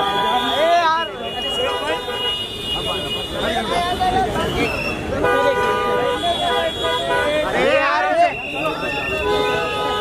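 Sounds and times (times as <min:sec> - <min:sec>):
car horn: 0:00.0 - 0:10.0
crowd voices: 0:00.0 - 0:10.0.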